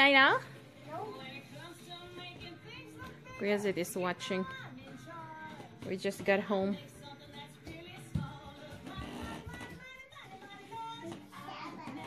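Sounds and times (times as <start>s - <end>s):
music: 0.0s - 12.0s.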